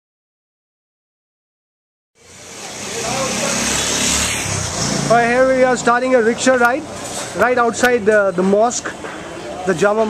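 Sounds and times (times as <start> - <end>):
traffic engine rumble: 2.2 - 10.0.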